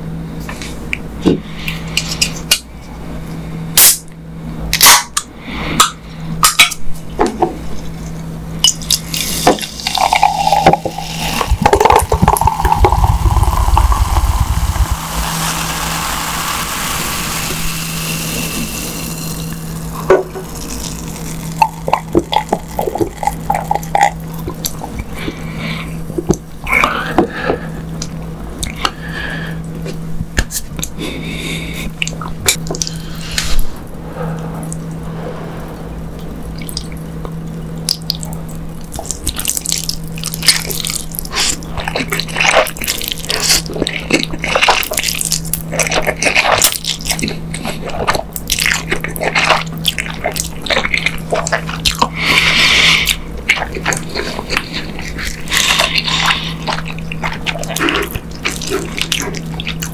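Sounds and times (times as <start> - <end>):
soda fizzing: 9.1 - 24.1
cola pouring into a glass: 9.4 - 24.2.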